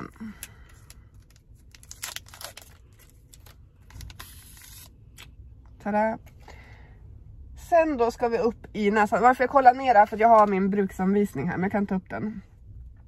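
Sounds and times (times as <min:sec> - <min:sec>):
wrapper crinkling: 0:00.7 - 0:05.0
wrapper tearing: 0:01.1 - 0:05.3.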